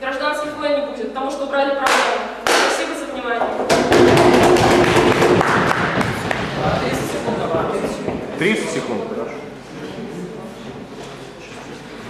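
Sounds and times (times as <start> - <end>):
woman's voice: 0.0 - 3.6
audience applauding: 3.8 - 7.4.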